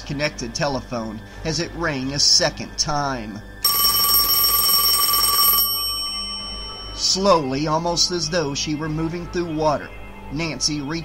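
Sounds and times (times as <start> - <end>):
telephone bell ringing: 3.6 - 7.5.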